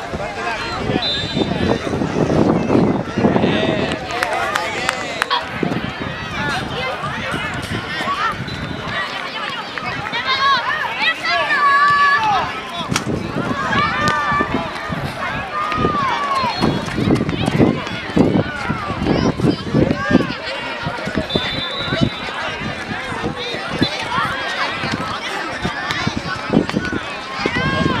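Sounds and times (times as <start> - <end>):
young players shouting: 3.0 - 28.0.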